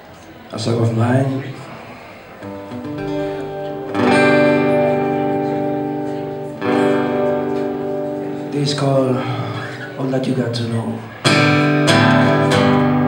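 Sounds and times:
acoustic guitar chords: 1.6 - 13.0.

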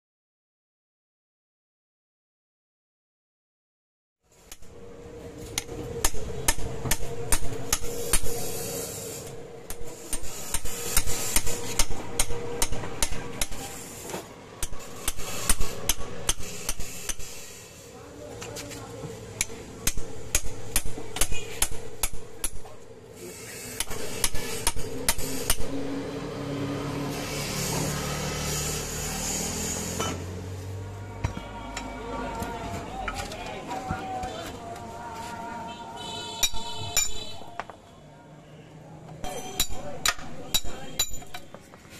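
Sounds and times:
metal knocking and scraping: 5.4 - 17.4.

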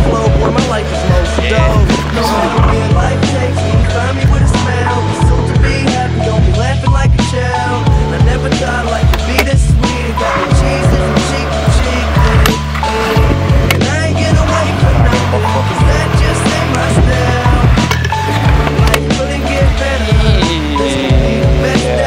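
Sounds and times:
hip-hop backing track: 0.0 - 22.0
scooter wheels rolling on stone: 14.8 - 19.0
scooter deck clacking on ground: 16.7 - 19.0.

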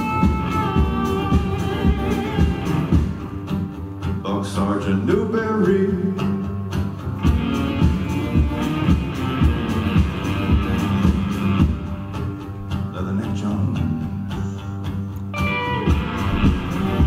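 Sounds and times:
live band music: 0.0 - 4.4, 5.2 - 17.0
strummed acoustic guitar: 0.0 - 17.0
higher melodic line: 15.4 - 17.0.

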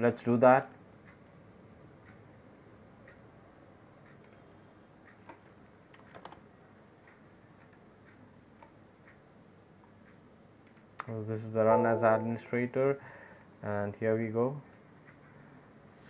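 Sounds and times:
keyboard and mouse clicks: 4.0 - 6.4, 7.1 - 9.2, 9.8 - 11.2.

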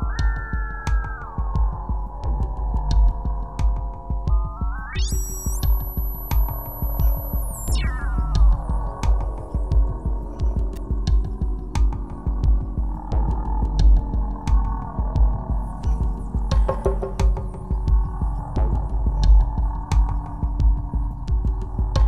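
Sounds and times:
ambient trance electronic music: 0.0 - 22.0.

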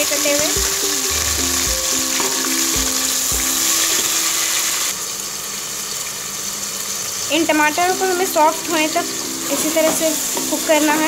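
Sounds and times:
vegetables sizzling in hot oil: 0.0 - 11.0
soft low thumps: 0.6 - 1.9.

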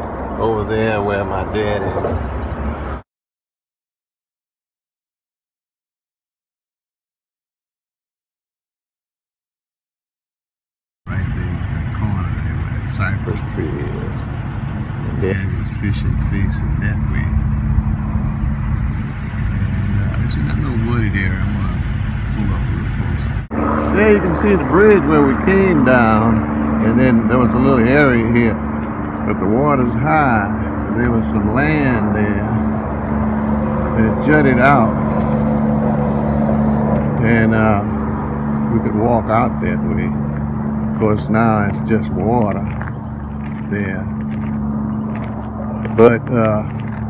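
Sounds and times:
car engine rumbling: 0.0 - 3.0, 11.1 - 47.0
steady hum: 11.1 - 47.0.

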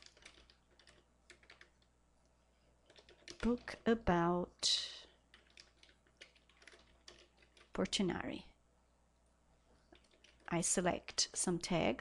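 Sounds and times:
computer keyboard typing: 0.0 - 1.9, 2.8 - 3.9, 5.0 - 8.0, 9.9 - 10.6.

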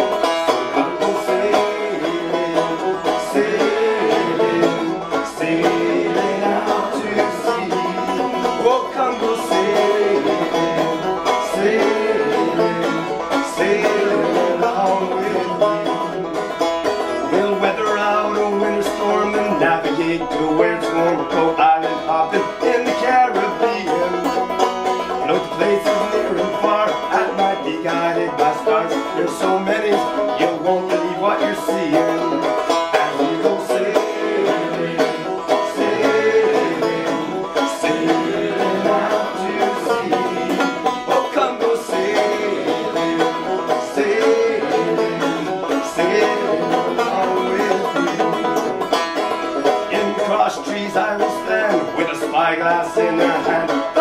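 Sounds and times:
banjo playing: 0.0 - 54.0.

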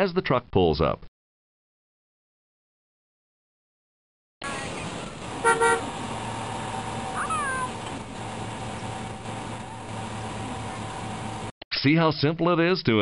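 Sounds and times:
outdoor background noise: 4.4 - 11.5
car horn honk: 5.4 - 6.0
falling chirp: 7.2 - 7.8.

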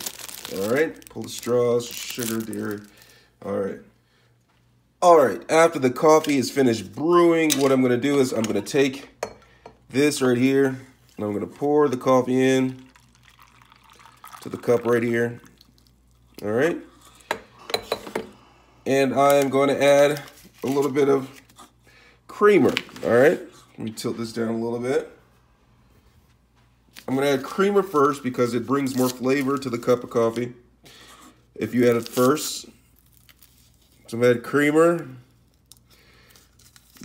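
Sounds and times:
paper packet crinkling: 0.0 - 3.2, 19.2 - 21.6, 26.9 - 30.4, 31.7 - 34.6, 35.4 - 37.0.

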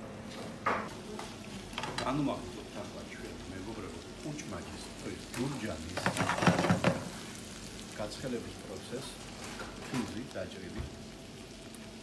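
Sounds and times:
frying sizzle: 0.0 - 12.0.

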